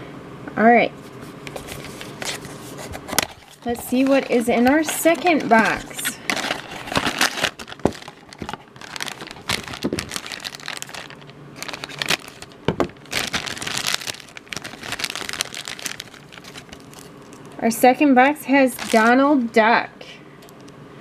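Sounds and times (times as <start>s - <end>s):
foil bag crinkling: 1.2s - 17.6s, 18.3s - 19.5s.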